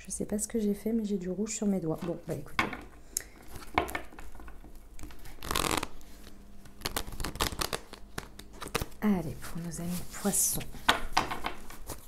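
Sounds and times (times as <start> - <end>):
cards being shuffled: 5.0 - 9.0.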